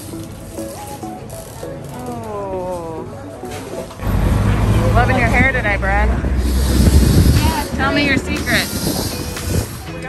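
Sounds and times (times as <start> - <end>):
background music: 0.0 - 10.0
city street rumble: 0.0 - 10.0.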